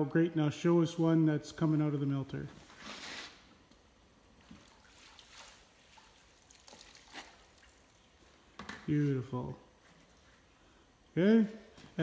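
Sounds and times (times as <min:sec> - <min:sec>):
water sloshing in a tank: 0:03.7 - 0:11.2
water dripping and trickling: 0:04.4 - 0:08.4.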